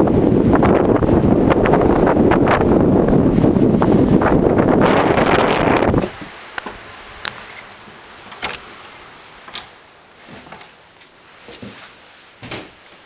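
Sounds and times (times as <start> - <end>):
wind buffeting microphone: 0.0 - 6.4.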